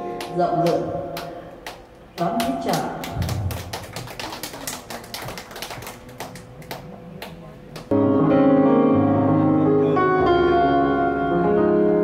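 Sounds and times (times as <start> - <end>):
audience clapping: 0.2 - 7.9
keyboard playing: 7.9 - 12.0.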